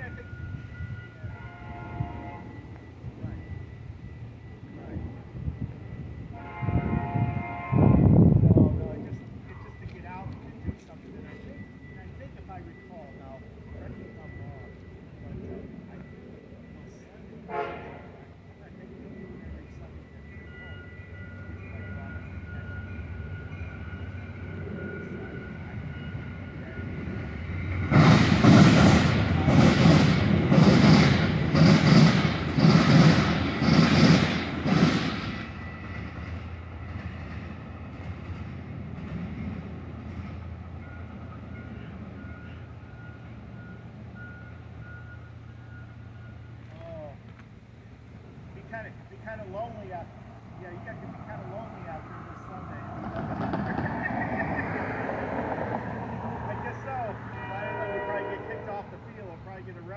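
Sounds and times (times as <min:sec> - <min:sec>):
passenger train passing: 0:00.0 - 0:59.9
train wheels rushing: 0:21.4 - 0:47.3, 0:48.6 - 0:59.9.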